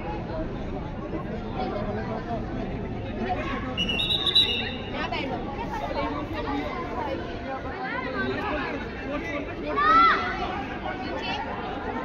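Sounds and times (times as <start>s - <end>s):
chatter of many people: 0.0s - 12.0s
short raised calls: 3.8s - 4.9s.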